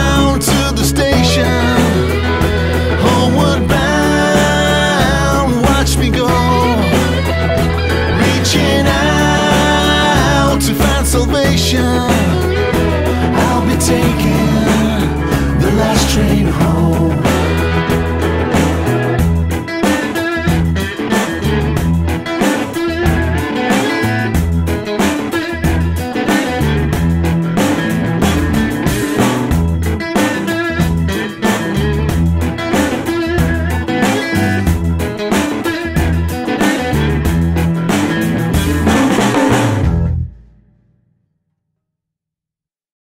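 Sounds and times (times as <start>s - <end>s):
drum kit steady beat: 0.0s - 40.4s
pulsing bass line: 0.0s - 40.5s
guitar: 0.0s - 40.8s.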